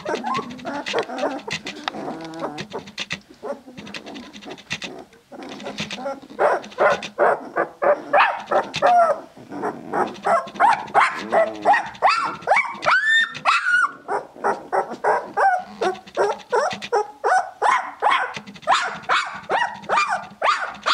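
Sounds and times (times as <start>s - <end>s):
puppies squealing and whining: 0.0s - 20.9s.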